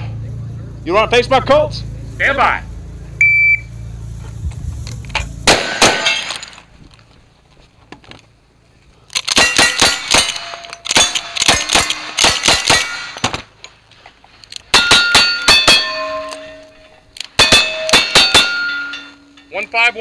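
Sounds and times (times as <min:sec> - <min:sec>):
rifle shots: 0:05.4 - 0:06.5, 0:09.2 - 0:13.5
steel plate targets ringing: 0:05.5 - 0:06.6, 0:09.4 - 0:13.3, 0:14.7 - 0:20.0.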